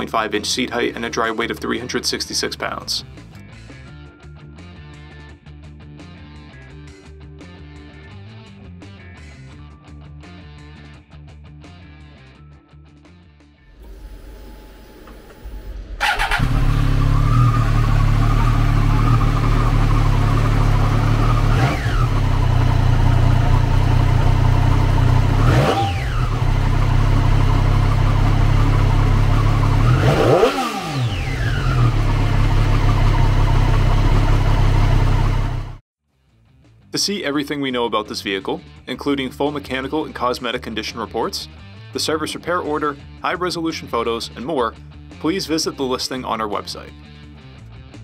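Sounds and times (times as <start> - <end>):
motorcycle engine idling and revving: 15.2 - 35.8.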